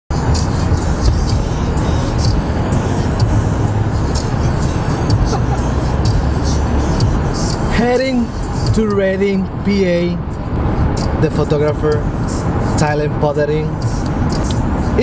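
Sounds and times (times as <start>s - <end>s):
music with light beat: 0.1s - 9.6s, 10.2s - 15.0s
car cabin road rumble: 0.1s - 15.0s
man speaking: 7.7s - 10.3s, 11.0s - 12.1s, 12.8s - 13.8s.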